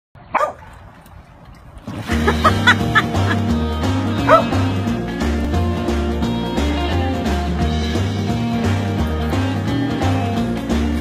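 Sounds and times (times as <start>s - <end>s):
large dog barking: 0.3s - 0.7s, 4.2s - 4.6s
dog splashing into water: 0.4s - 3.6s.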